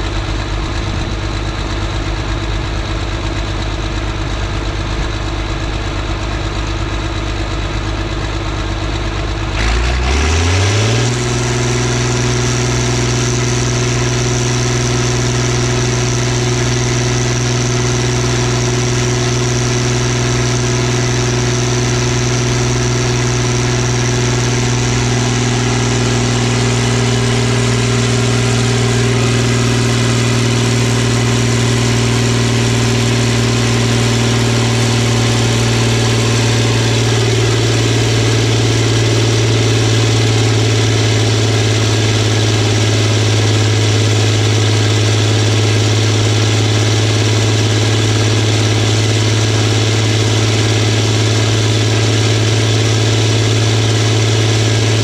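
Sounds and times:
tractor diesel engine under load: 0.0s - 55.0s.

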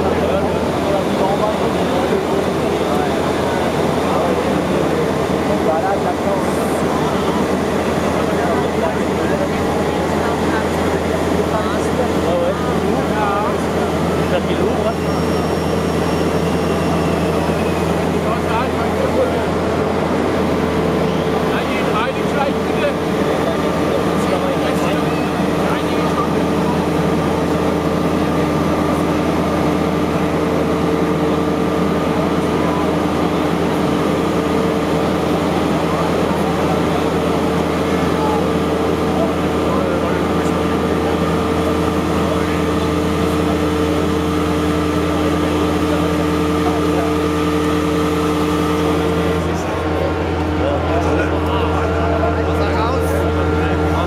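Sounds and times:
excavator engine hum: 0.0s - 54.0s
high hydraulic whine: 0.0s - 54.0s.

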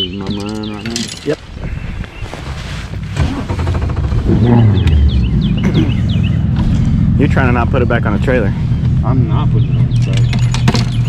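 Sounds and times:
outboard engine rumbling: 0.0s - 11.0s.

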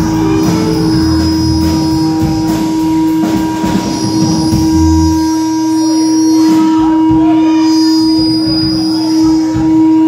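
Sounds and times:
blues band low notes: 0.0s - 7.8s
loud steady tone: 0.0s - 10.0s.

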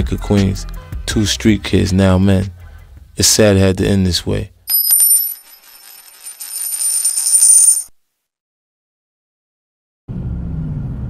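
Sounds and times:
high ringing tones: 4.7s - 7.9s
rattling jingling sound effect: 4.7s - 7.9s.

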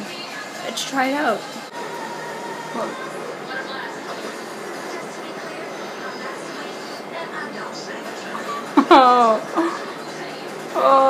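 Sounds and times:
faint voices: 0.0s - 11.0s
steady background noise: 0.0s - 11.0s.

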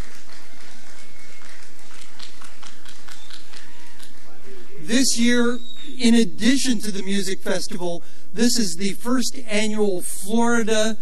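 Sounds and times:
audience clapping: 0.0s - 4.9s.

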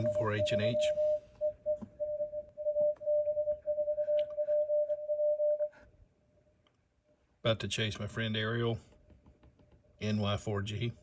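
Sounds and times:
morse code tone: 0.0s - 5.8s.

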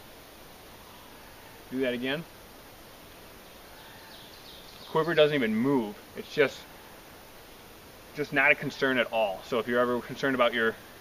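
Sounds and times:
faint high chirps: 3.1s - 7.6s.

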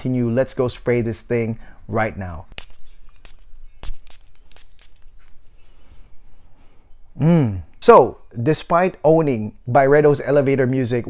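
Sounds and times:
perfume bottle spraying: 2.5s - 5.6s.

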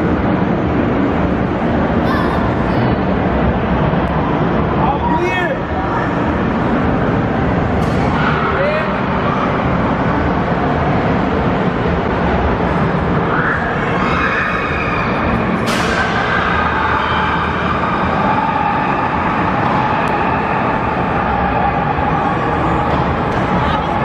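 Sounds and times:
echoing indoor amusement hall din: 0.0s - 24.0s.

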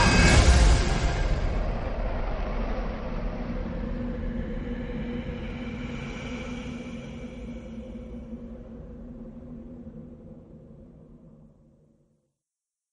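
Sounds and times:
loud hit: 0.0s - 2.9s
low rumbling drone: 0.0s - 11.6s.

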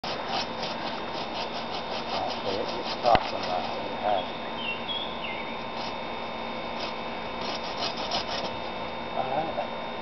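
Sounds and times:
bow saw cutting wood: 0.0s - 4.2s, 5.6s - 6.0s, 6.7s - 8.6s.

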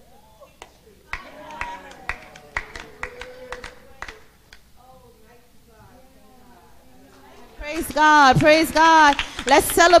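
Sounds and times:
hand claps: 0.6s - 4.6s, 7.7s - 9.9s.

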